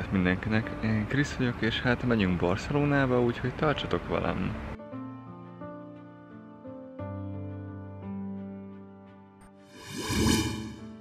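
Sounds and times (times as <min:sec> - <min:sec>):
soft background music: 0:00.0 - 0:11.0
whoosh sound effect: 0:09.8 - 0:11.0.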